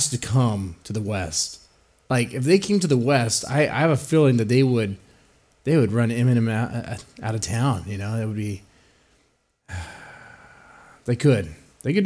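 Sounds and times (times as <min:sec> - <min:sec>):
man sighing: 0:09.7 - 0:11.0.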